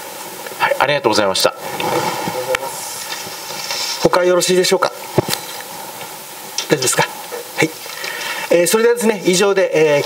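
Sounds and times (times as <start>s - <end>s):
room and microphone hiss: 0.0s - 10.0s.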